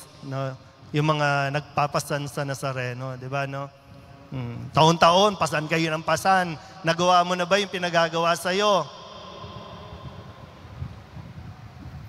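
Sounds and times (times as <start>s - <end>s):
faint steady hum: 0.0s - 12.0s
low rumbling background noise: 0.0s - 12.0s.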